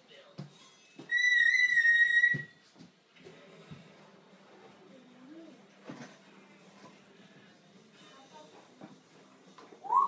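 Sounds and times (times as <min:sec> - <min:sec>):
parrot whistling: 0:01.1 - 0:02.6.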